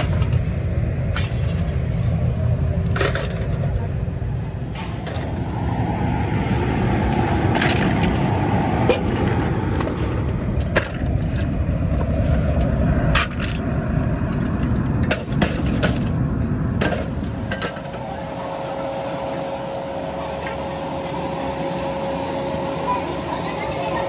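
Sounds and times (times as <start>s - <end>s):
machinery rumbling: 0.0s - 24.0s
steady hum: 0.0s - 24.0s
sharp knocks and clatter: 14.2s - 16.2s, 16.8s - 18.0s.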